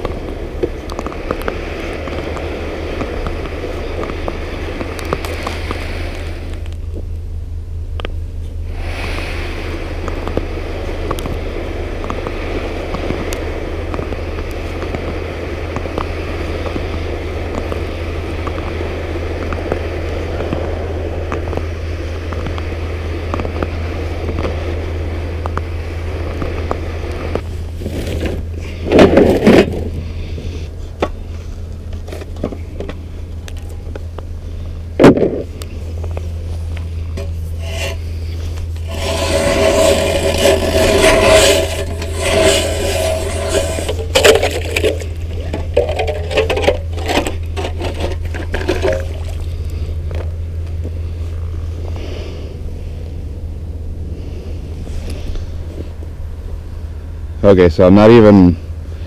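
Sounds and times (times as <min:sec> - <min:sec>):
scraping over thin ice: 0:37.3 - 0:49.9.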